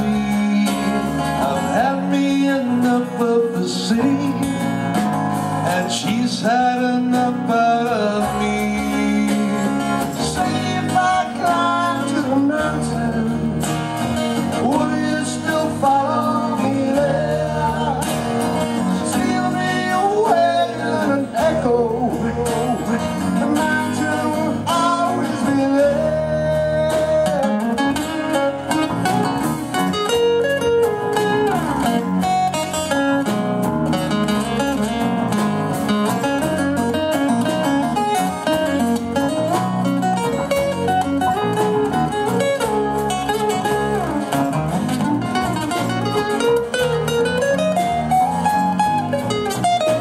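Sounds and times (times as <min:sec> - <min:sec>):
man singing: 0:00.0 - 0:28.8
electric bass guitar: 0:00.0 - 0:50.0
strummed acoustic guitar: 0:00.0 - 0:50.0.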